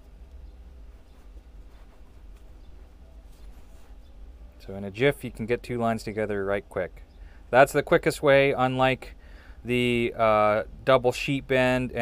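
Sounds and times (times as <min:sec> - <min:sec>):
rope rustling and ticking: 0:00.0 - 0:04.4
low steady rumble: 0:00.0 - 0:12.0.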